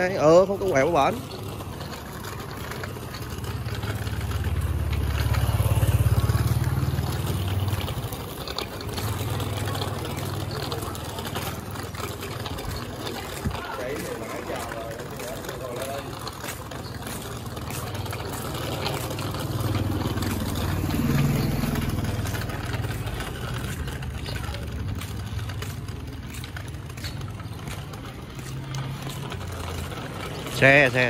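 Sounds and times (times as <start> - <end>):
vehicle engine rumbling: 0.0 - 31.0.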